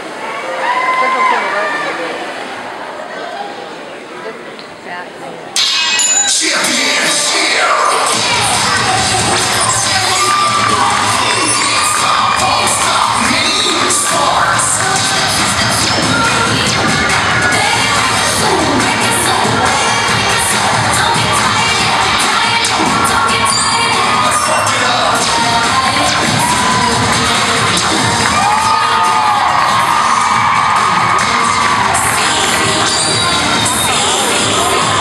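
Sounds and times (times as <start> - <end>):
crowd cheering: 0.0 - 4.1, 5.6 - 35.0
children shouting: 6.9 - 35.0.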